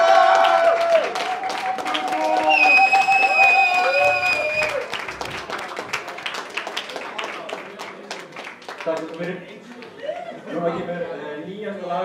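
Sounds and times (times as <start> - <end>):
audience clapping and cheering: 0.0 - 10.2.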